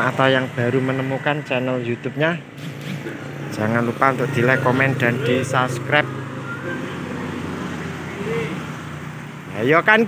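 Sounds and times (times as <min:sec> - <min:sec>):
motorcycles passing: 0:00.0 - 0:10.0.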